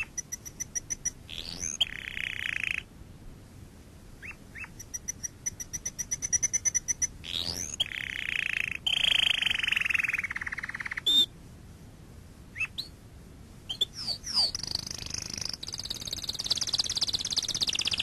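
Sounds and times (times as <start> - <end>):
animal chirps: 0.0 - 2.9, 4.2 - 11.3, 12.6 - 12.9, 13.7 - 18.0.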